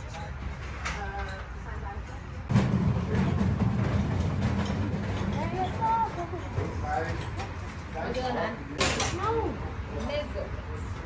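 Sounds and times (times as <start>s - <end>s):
loud low rumble: 2.5s - 5.3s.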